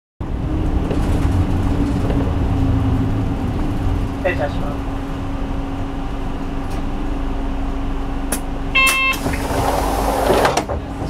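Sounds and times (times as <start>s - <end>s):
bus engine drone: 0.2s - 11.0s
low road rumble: 0.2s - 11.0s.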